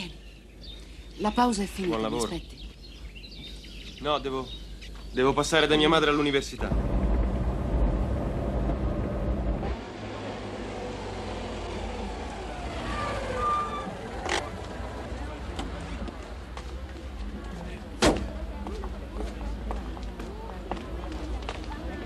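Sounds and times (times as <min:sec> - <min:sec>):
city street traffic: 0:00.0 - 0:22.0
car passing with low rumble: 0:06.4 - 0:18.6
vehicle passing: 0:06.6 - 0:17.2.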